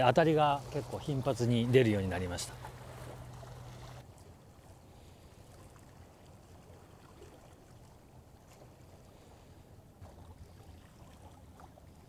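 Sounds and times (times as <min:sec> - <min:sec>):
sea water lapping: 0:00.0 - 0:12.0.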